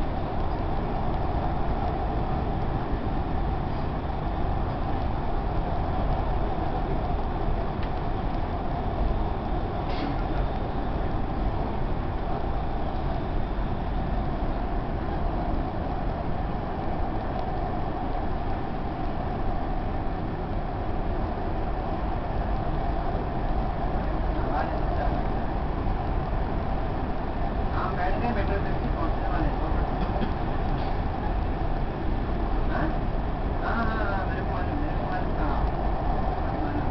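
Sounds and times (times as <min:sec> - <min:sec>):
constant hum: 0:00.0 - 0:36.9
train rumble inside carriage: 0:00.0 - 0:36.9.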